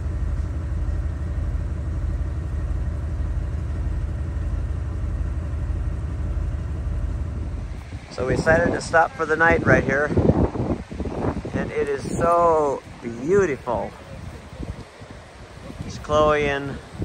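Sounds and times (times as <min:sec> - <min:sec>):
engine idling: 0:00.0 - 0:17.0.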